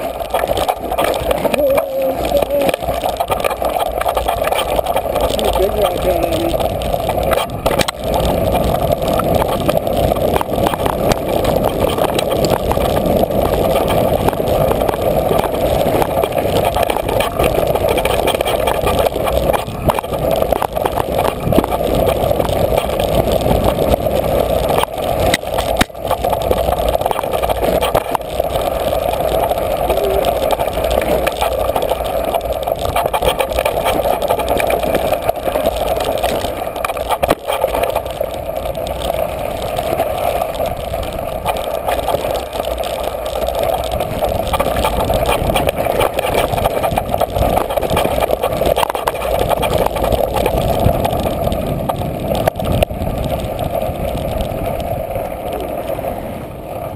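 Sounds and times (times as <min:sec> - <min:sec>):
tyres rattling over gravel: 0:00.0 - 0:55.7.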